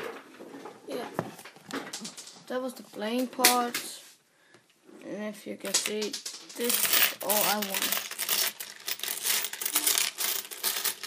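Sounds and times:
hand handling toy machine: 0:05.9 - 0:11.0.

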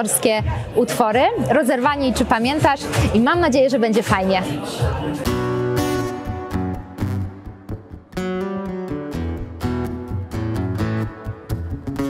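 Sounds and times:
acoustic guitar strummed chords: 0:04.7 - 0:12.0.

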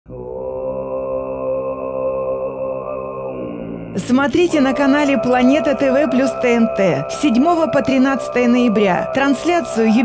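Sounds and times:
throat-singing drone: 0:00.1 - 0:10.0.

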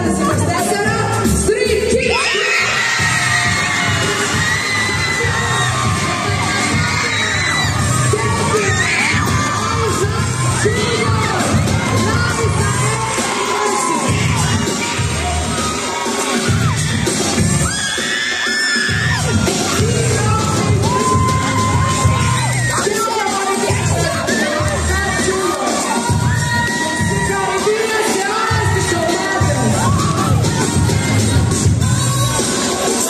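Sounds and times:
crowd cheering and shouting: 0:00.0 - 0:33.0
loud music: 0:00.0 - 0:33.0.

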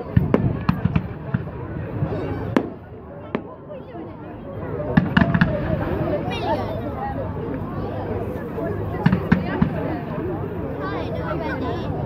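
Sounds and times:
fireworks bangs: 0:00.0 - 0:03.6, 0:04.9 - 0:06.0
crowd chatter: 0:00.0 - 0:12.0.

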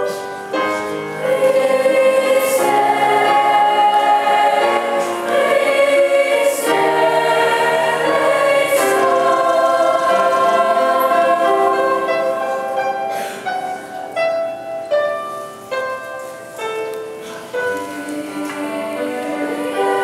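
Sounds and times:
choir singing sustained chords: 0:00.0 - 0:14.6, 0:17.4 - 0:20.0.

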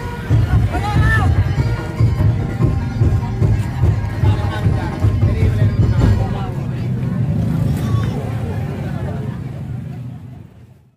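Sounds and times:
street crowd voices: 0:00.0 - 0:10.9
motor scooters running: 0:05.9 - 0:10.8.

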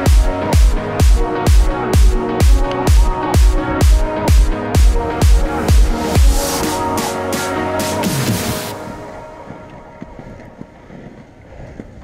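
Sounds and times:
skate wheels rolling on asphalt: 0:08.7 - 0:12.0
wind buffeting microphone: 0:08.9 - 0:12.0.

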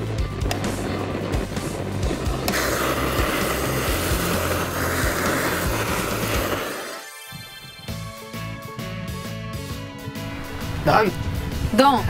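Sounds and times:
blowtorch flame hissing: 0:00.0 - 0:07.2
background music: 0:00.0 - 0:12.0.

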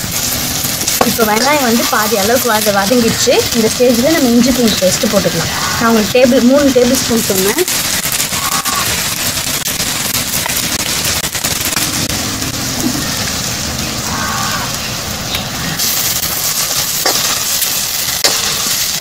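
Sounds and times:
onions sizzling in hot oil: 0:00.0 - 0:19.0.

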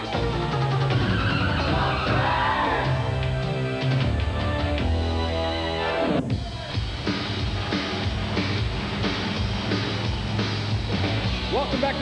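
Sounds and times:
rock theme music with drums: 0:00.0 - 0:12.0.

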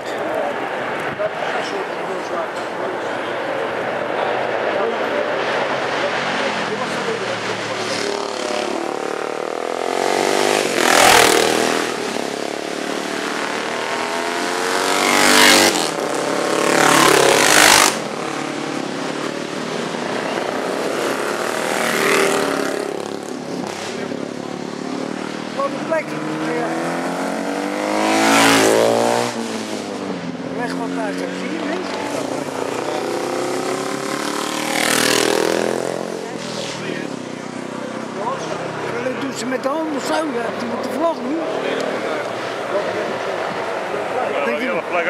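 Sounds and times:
racing motorcycles passing: 0:00.0 - 0:45.0.

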